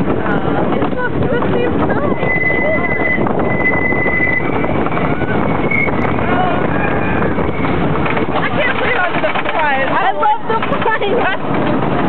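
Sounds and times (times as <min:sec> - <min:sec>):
roller coaster clattering on track: 0:00.0 - 0:12.0.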